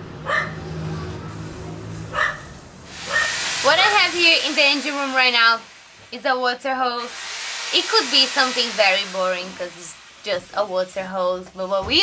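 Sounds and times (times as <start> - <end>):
dog barking: 0.2 - 0.6, 2.1 - 3.4.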